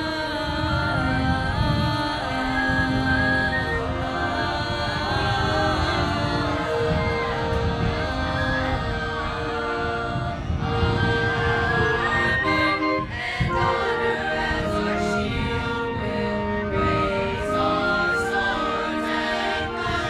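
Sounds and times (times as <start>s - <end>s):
choir singing: 0.0s - 20.0s.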